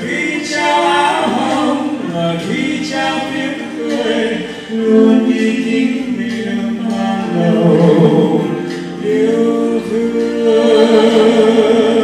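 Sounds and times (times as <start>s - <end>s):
man and woman singing duet: 0.0s - 12.0s.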